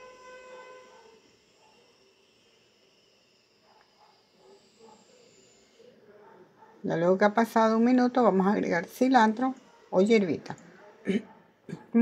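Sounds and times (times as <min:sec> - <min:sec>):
steady high tone: 0:00.0 - 0:03.6.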